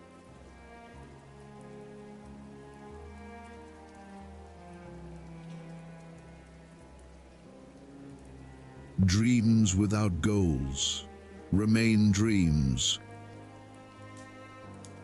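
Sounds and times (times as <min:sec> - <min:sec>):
soft music of held chords: 0:00.0 - 0:15.0
rain hissing: 0:02.4 - 0:13.0.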